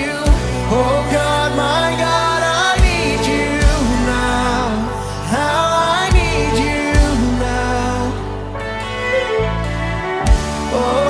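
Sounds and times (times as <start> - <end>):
person singing: 0.0 - 9.6, 10.2 - 11.0
worship band playing: 0.0 - 11.0.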